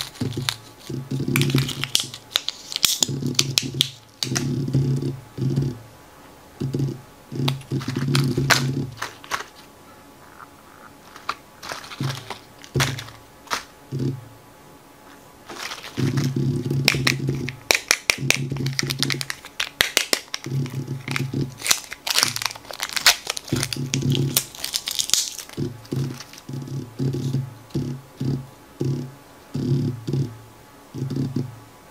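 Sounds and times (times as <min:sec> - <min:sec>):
foil packaging crinkling: 0:00.0 - 0:04.5, 0:07.4 - 0:09.7, 0:10.8 - 0:13.8, 0:15.4 - 0:26.5.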